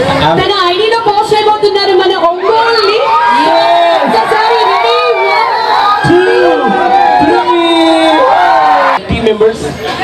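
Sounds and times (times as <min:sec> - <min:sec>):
crowd cheering and shouting: 0:01.1 - 0:10.0.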